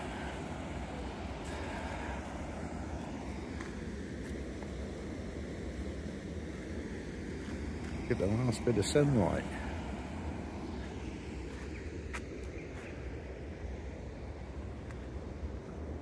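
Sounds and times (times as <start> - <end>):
river water rushing: 0.0 - 3.8.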